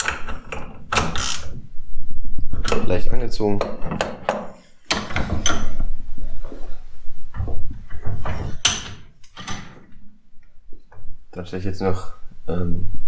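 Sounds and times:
bench vise handling noise: 0:03.6 - 0:05.9, 0:07.4 - 0:10.0
metallic clanks and knocks: 0:03.6 - 0:05.9, 0:07.3 - 0:10.0.

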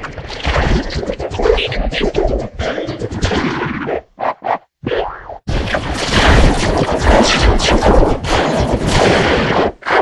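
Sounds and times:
harsh crackling noise burst: 0:05.5 - 0:10.0.

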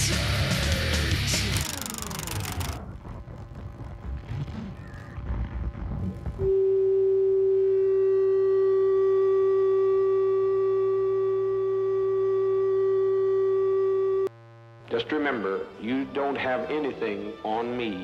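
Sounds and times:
low hum: 0:00.7 - 0:15.8
steady electronic tone: 0:01.5 - 0:17.5.

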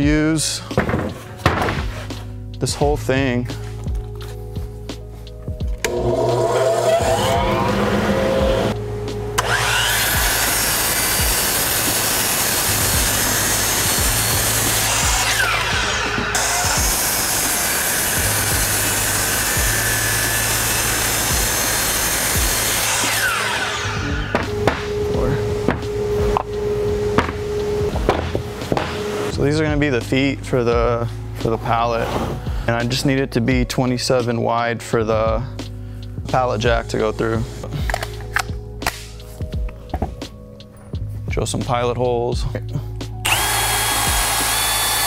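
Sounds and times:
miter saw cutting wood: 0:05.8 - 0:08.8, 0:09.4 - 0:29.4, 0:43.2 - 0:45.0.

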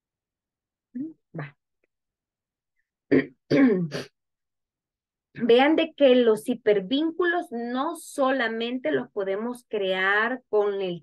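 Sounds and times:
woman clearing her throat: 0:03.1 - 0:04.2.

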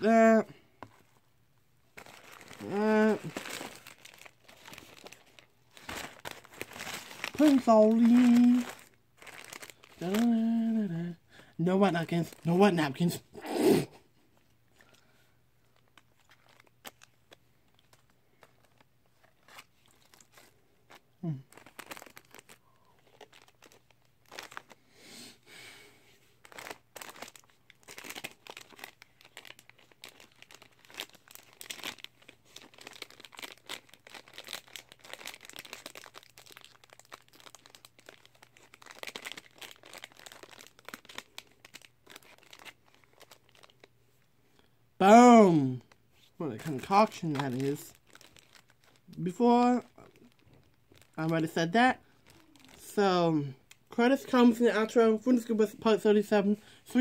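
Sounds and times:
plastic wrappers crinkling: 0:01.9 - 0:13.1, 0:14.4 - 0:24.8, 0:26.3 - 0:44.3, 0:45.1 - 0:57.0.

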